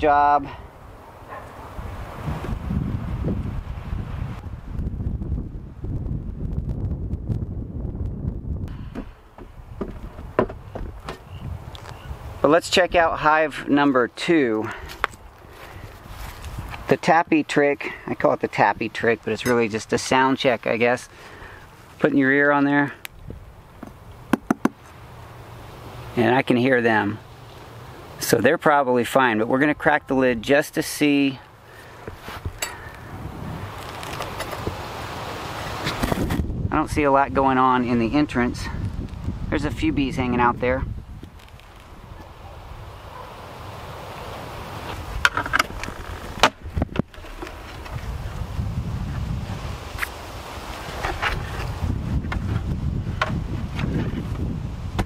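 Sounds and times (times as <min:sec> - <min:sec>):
wind rumbling on microphone: 0:00.0 - 0:13.7, 0:14.7 - 0:17.5, 0:18.1 - 0:26.2, 0:32.0 - 0:55.0
knocking on wooden box: 0:08.9 - 0:11.2, 0:23.8 - 0:24.8.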